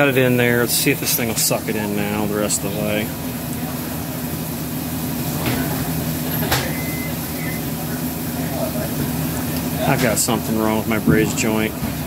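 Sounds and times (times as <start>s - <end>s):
refrigeration compressor humming: 0.0s - 12.0s.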